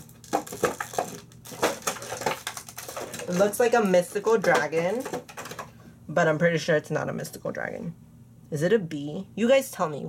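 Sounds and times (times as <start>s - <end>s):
plastic packaging crackling: 0.0s - 5.7s.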